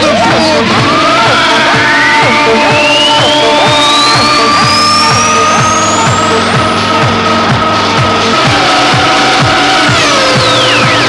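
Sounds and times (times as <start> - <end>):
techno kick drum: 0.0 - 11.0
rising synth sweep: 3.3 - 11.0
sustained synth tones: 3.4 - 9.2.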